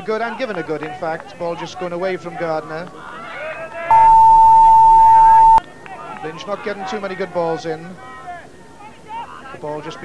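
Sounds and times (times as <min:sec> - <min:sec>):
loud steady electronic tone: 0:03.9 - 0:05.6
low hum: 0:03.9 - 0:05.6.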